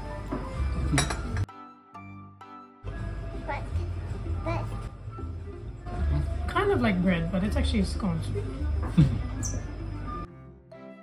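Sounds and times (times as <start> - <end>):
background music: 0.0 - 11.0
china clinking: 0.9 - 1.5.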